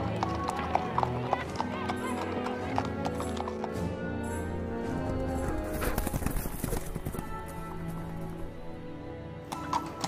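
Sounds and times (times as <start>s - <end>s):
background music: 0.0s - 10.0s
horse hooves clopping: 0.0s - 10.0s.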